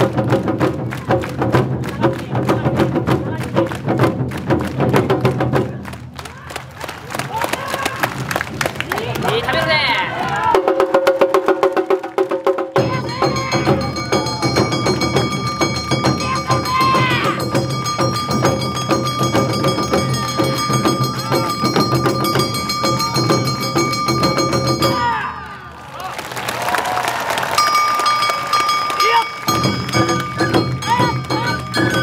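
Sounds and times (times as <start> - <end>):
festival band with percussion: 0.0 - 25.7, 27.4 - 32.0.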